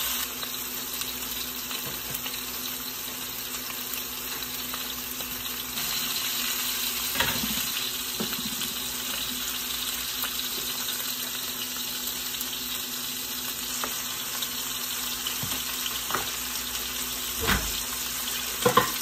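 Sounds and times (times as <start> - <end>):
food sizzling in a hot pan: 0.0 - 19.0.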